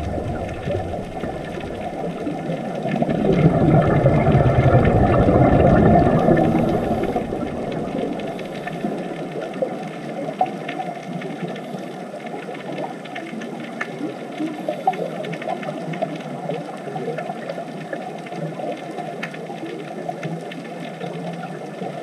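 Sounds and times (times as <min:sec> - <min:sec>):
watery hiss: 0:00.0 - 0:09.7
underwater low rumble: 0:00.0 - 0:22.0
faint clicks: 0:06.0 - 0:22.0.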